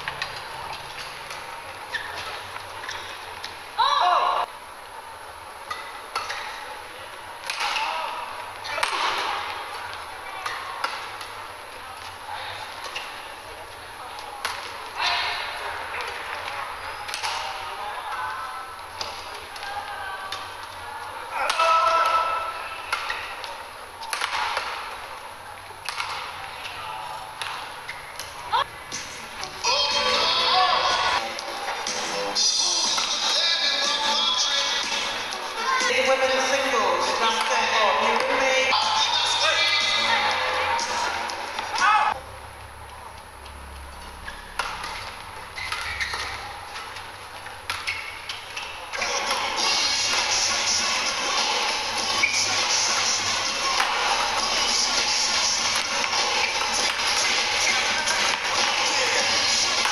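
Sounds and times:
shoes squeaking on court: 0:00.0 - 0:03.6, 0:14.2 - 0:17.6, 0:27.4 - 0:29.6, 0:43.4 - 0:50.4, 0:51.4 - 0:59.9
voices: 0:00.0 - 0:43.5, 0:44.2 - 0:59.9.

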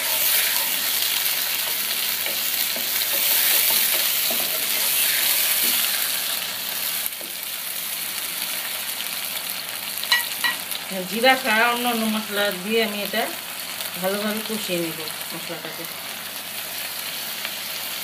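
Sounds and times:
spatula scraping pan: 0:00.0 - 0:06.5
onions sizzling in oil: 0:00.0 - 0:18.0.

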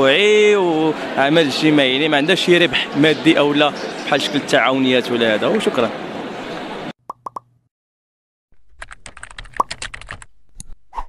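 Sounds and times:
rapid typing-like clicks: 0:08.8 - 0:10.3.

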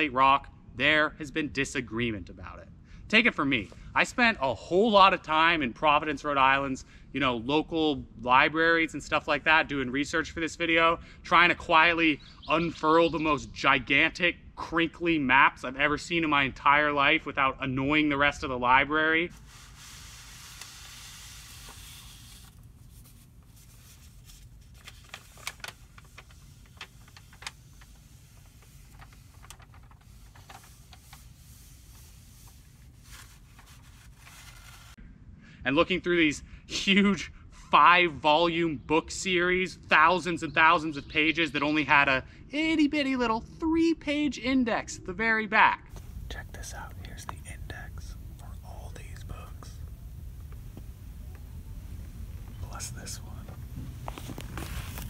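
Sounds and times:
paper map crinkling: 0:19.3 - 0:35.0, 0:53.3 - 0:55.0
steady low rumble: 0:22.5 - 0:34.3, 0:45.9 - 0:55.0
person whispering: 0:46.2 - 0:49.9, 0:52.5 - 0:53.6.

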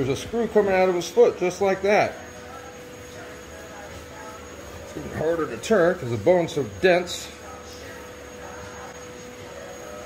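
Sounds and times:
faint steady hum: 0:00.0 - 0:10.0
room noise hiss: 0:00.0 - 0:10.0.

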